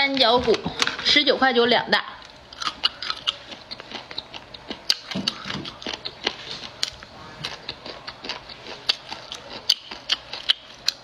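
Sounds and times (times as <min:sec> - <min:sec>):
chewing crunchy food: 0:02.2 - 0:11.0.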